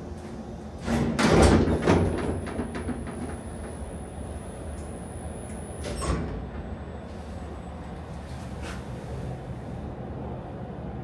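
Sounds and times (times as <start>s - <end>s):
elevator doors clunking open: 0.1s - 7.1s.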